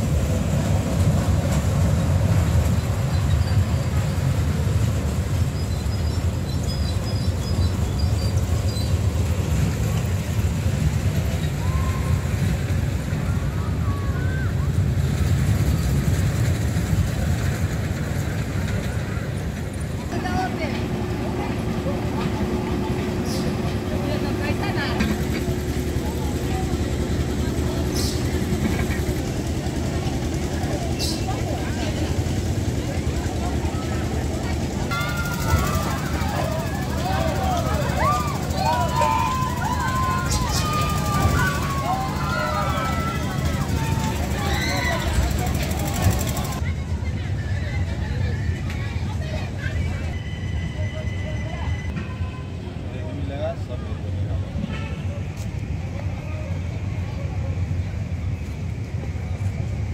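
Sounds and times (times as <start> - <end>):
crowd voices: 0.0 - 59.9
ride machinery rumbling: 0.0 - 59.9
held mechanical tone: 33.5 - 46.6.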